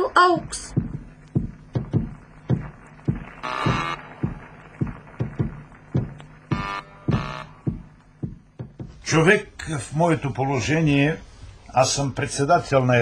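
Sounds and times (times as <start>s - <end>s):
low hum: 0.0s - 9.1s
footsteps walking: 0.6s - 9.1s.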